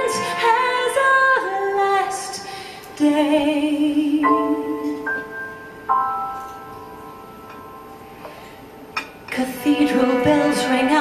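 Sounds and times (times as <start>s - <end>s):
piano chord ringing: 4.3s - 9.1s.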